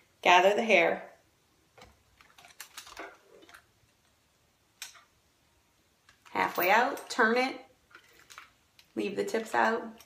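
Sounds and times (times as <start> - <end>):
small handling clicks and rustles: 1.8 - 4.2, 6.0 - 10.0.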